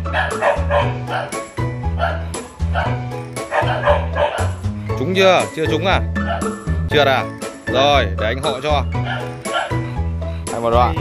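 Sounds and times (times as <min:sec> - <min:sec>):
background music with bassline: 0:00.0 - 0:11.0
dog barking: 0:00.1 - 0:04.6, 0:06.2 - 0:06.6, 0:09.0 - 0:09.9.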